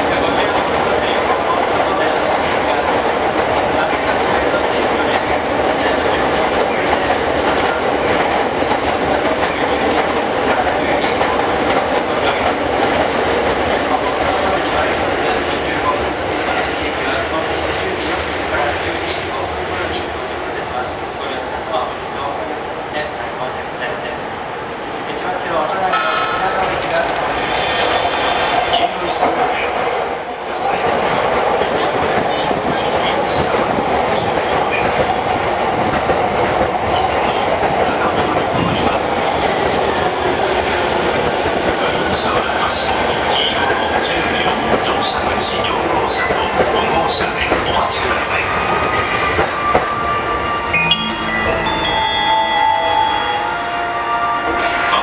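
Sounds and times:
train wheels on rails: 0.0s - 22.0s, 25.7s - 50.7s.

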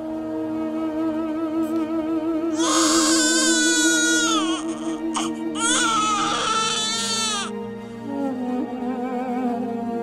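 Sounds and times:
newborn baby crying: 2.6s - 7.6s.

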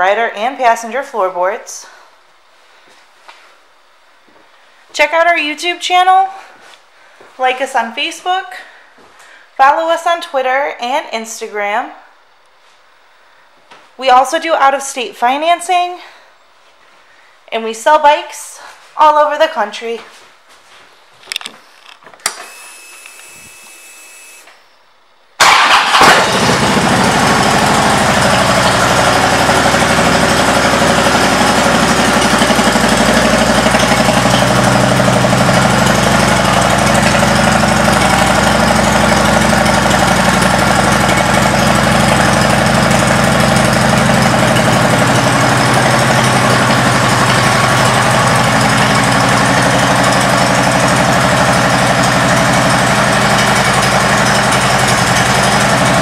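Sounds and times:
motorcycle engine starting and idling: 25.4s - 56.0s.

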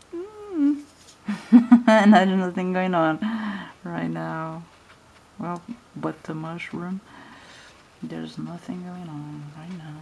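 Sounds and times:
woman humming: 0.0s - 2.4s
woman speaking: 1.7s - 4.7s, 5.4s - 7.1s, 8.0s - 10.0s.

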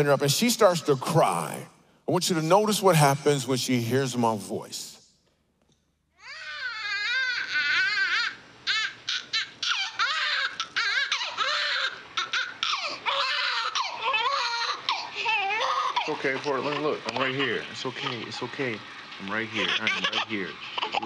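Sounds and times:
newborn baby crying: 6.2s - 18.5s, 19.5s - 21.0s.

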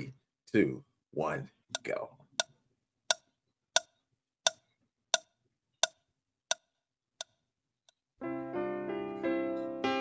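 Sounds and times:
clock ticking: 1.6s - 8.1s.

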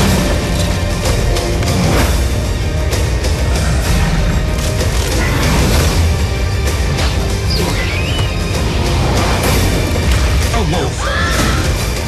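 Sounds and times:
film trailer music with heavy bass: 0.0s - 12.0s.

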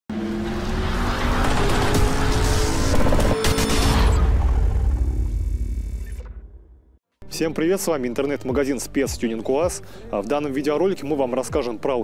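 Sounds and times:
car engine running hard: 0.1s - 4.6s
music: 6.8s - 12.0s.

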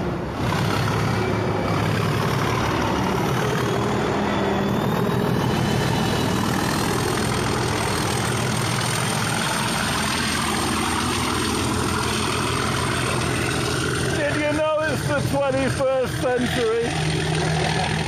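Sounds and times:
diesel locomotive engine running: 0.0s - 18.0s.

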